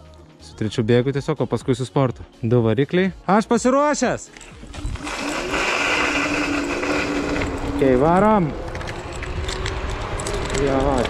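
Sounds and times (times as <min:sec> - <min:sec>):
electric scooter motor whining: 0:04.5 - 0:11.0
wind and tyres rushing: 0:04.5 - 0:11.0.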